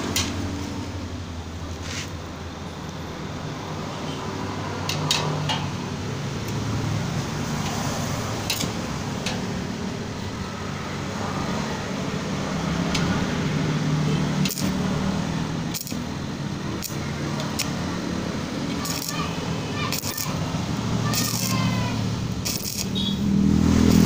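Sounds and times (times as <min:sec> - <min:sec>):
steady mechanical hum: 0:00.0 - 0:24.0
welding electrode tapping on steel: 0:08.5 - 0:09.5, 0:14.4 - 0:14.8, 0:15.7 - 0:16.1, 0:16.8 - 0:17.8, 0:18.7 - 0:20.4, 0:21.0 - 0:23.2.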